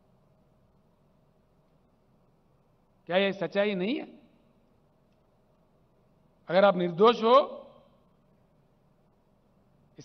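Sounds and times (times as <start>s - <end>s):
man's amplified speech: 3.1s - 4.2s, 6.5s - 7.8s.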